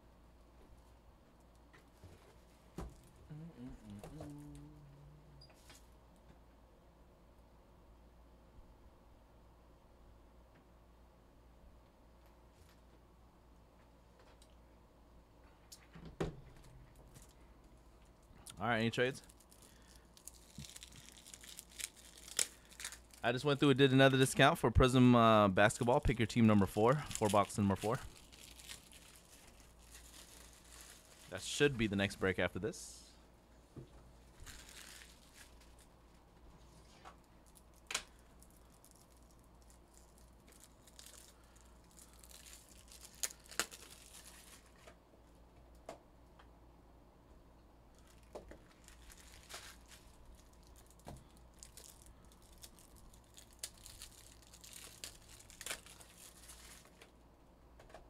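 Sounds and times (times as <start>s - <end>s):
steady low hum: 0.0s - 57.8s
plastic packaging crinkling: 19.1s - 23.6s, 25.6s - 32.4s, 34.3s - 35.9s, 37.2s - 44.9s, 47.9s - 57.2s.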